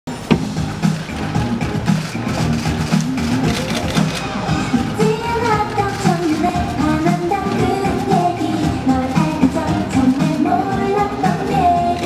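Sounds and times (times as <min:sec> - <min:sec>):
pop backing track beat and bass: 0:00.1 - 0:12.0
sharp knock: 0:00.3 - 0:01.0.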